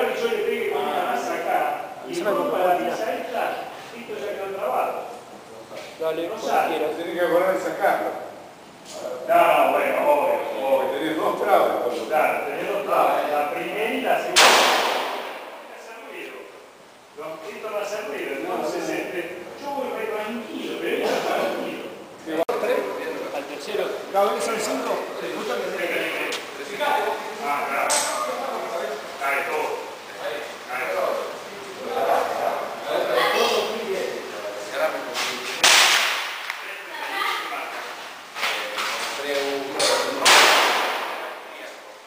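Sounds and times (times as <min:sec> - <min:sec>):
rifle shot reverberating: 0:14.4 - 0:15.5.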